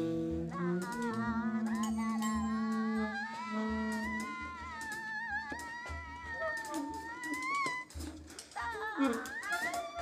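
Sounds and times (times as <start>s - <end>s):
jazz quartet playing: 0.0s - 4.1s
saxophone melody with vibrato: 0.0s - 8.1s.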